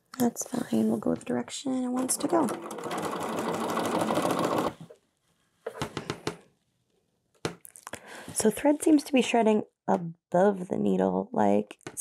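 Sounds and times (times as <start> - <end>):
sewing machine stitching: 2.0 - 4.9.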